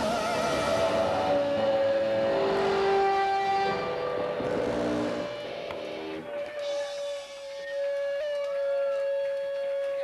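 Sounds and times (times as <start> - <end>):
rock band droning instrumental: 0.0 - 8.8.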